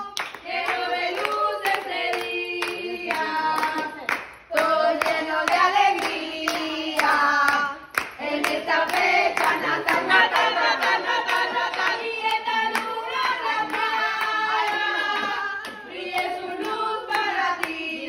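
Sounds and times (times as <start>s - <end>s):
hands clapping in time: 0.0s - 17.9s
group singing a birthday song: 0.0s - 18.0s.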